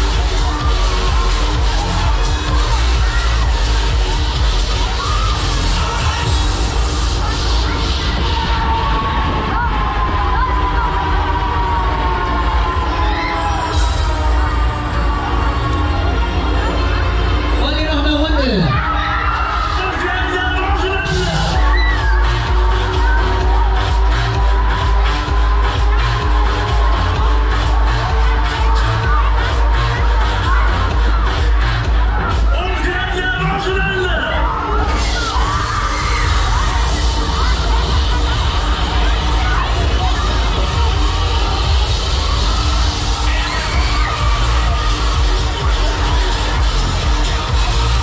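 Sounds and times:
electronic dance music: 0.0 - 48.0.

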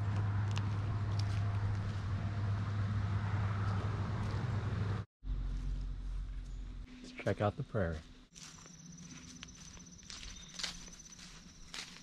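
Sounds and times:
footsteps on grass: 0.0 - 2.4, 5.3 - 12.0
pulsing insect trill: 8.4 - 12.0.

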